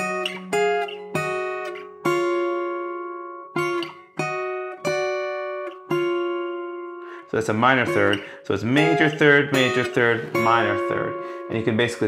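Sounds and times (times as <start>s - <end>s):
fingerpicked acoustic guitar: 0.0s - 12.0s.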